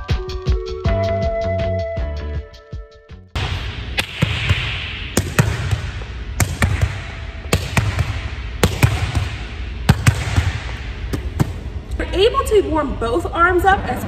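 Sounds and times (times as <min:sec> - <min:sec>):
volleyball hitting gym wall: 0:03.4 - 0:11.7.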